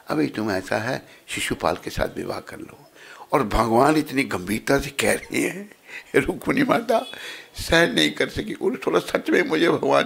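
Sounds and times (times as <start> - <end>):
man talking into a microphone: 0.0 - 10.0.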